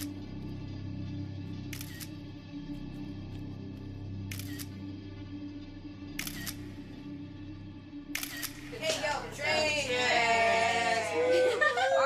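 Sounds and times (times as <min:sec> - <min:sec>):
voices: 0:08.7 - 0:12.0.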